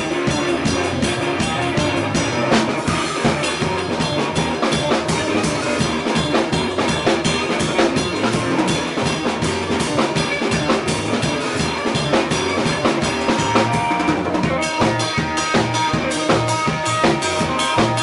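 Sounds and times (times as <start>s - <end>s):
drum kit busy beat: 0.0s - 18.0s
electric guitar: 0.0s - 18.0s.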